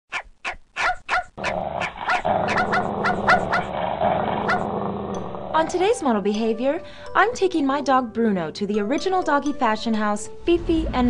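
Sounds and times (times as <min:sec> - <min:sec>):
dog yapping: 0:00.1 - 0:04.7
steady background sound: 0:01.3 - 0:07.2.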